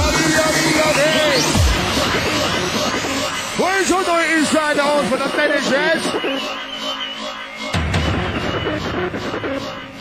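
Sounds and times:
electronic dance music: 0.0 - 10.0.

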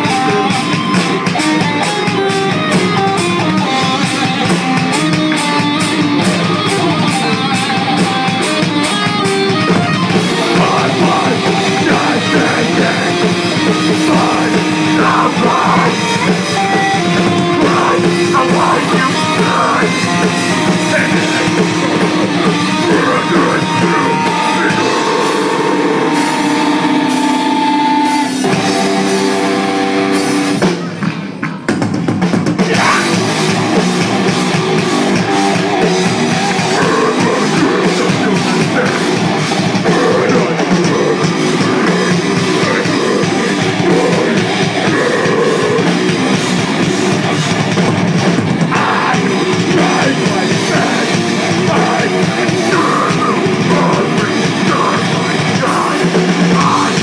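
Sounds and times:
distorted electric guitar: 0.0 - 57.0
drum kit: 0.0 - 57.0.

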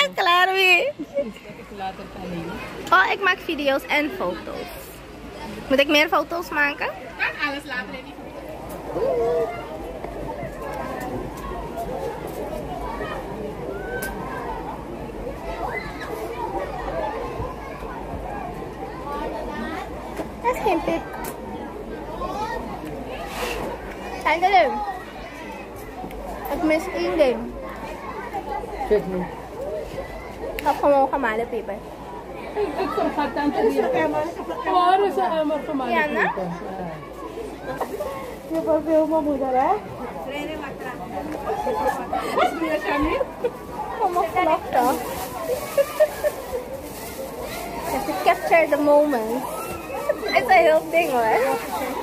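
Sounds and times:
background chatter: 0.0 - 52.0
people talking: 0.0 - 52.0.

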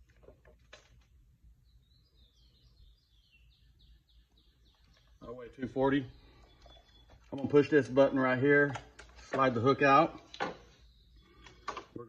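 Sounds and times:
bird chirping: 1.6 - 12.0.

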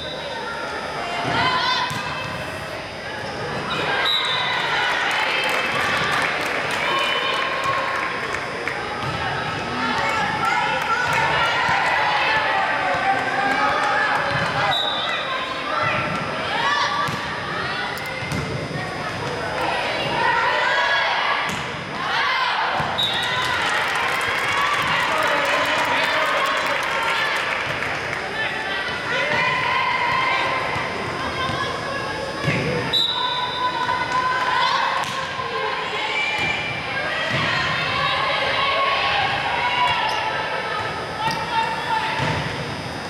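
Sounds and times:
chatter of voices: 0.0 - 43.0
referee's whistle blast: 3.7 - 4.6, 14.6 - 15.2, 32.9 - 33.8.

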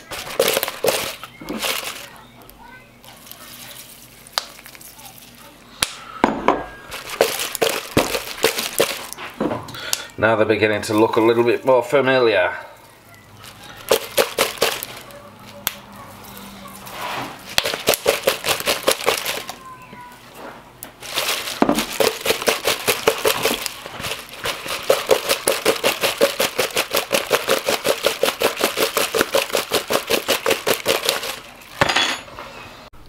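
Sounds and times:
pork rinds rattling in plastic bowl: 0.0 - 2.1, 6.9 - 9.2, 13.4 - 15.1, 17.5 - 19.6, 21.0 - 31.6.

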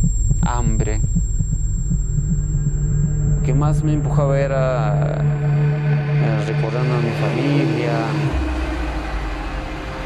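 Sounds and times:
low throbbing hum with pulses: 0.0 - 10.0
steady low tone: 0.0 - 10.0.

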